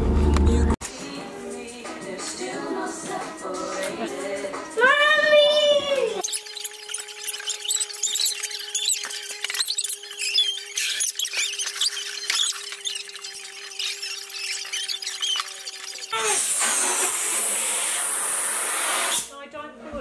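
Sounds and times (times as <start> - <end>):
background music: 0.0 - 6.2
short high-pitched squeaks: 6.2 - 17.0.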